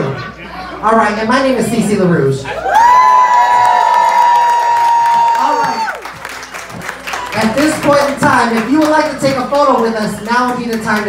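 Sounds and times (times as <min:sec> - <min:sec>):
faint clapping: 0:03.6 - 0:09.1.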